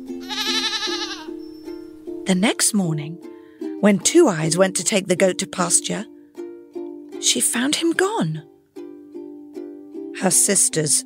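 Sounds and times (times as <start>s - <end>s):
soft background music: 0.0s - 11.0s
goat bleating: 0.2s - 1.4s.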